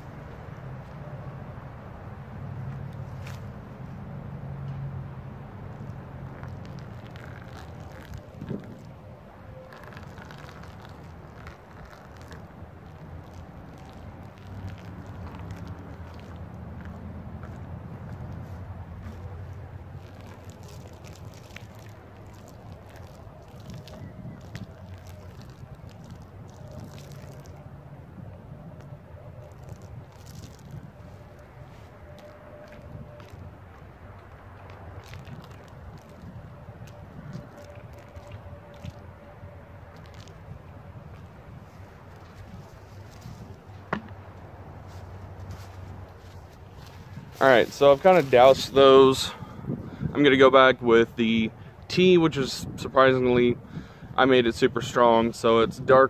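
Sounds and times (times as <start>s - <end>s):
wind rumble on microphone: 0.0s - 56.0s
liquid splashing and sloshing: 9.7s - 27.6s, 29.4s - 39.1s.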